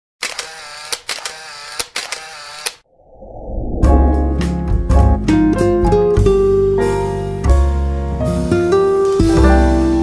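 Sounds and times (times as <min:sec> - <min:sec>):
sharp clicks: 0:00.2 - 0:02.8
steady sound: 0:02.8 - 0:06.0
low rising swell: 0:02.9 - 0:05.8
piano music: 0:03.8 - 0:10.0.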